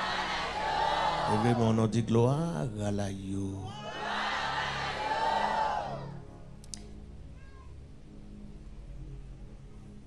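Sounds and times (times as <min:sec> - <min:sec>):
congregation singing: 0:00.0 - 0:02.0.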